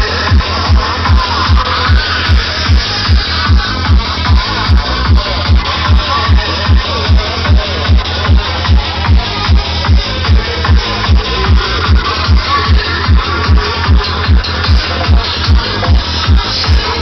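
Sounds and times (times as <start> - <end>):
bass: 0.0 - 17.0.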